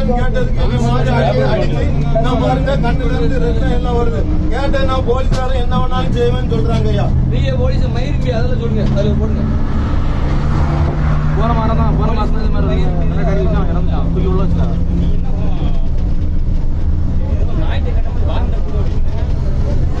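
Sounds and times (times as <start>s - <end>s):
voices talking: 0.0s - 10.1s
bus engine drone and road rumble: 0.0s - 20.0s.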